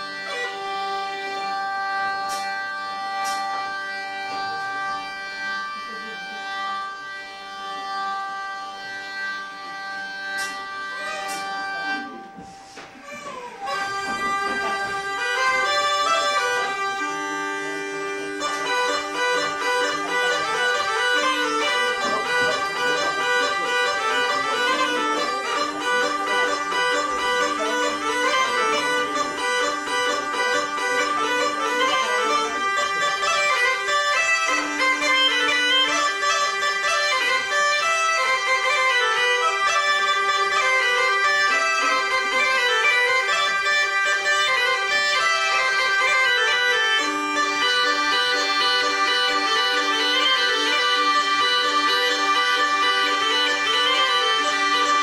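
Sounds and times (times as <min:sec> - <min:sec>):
bagpipe playing a tune: 0:00.0 - 0:55.0
hurdy-gurdy playing: 0:00.0 - 0:55.0.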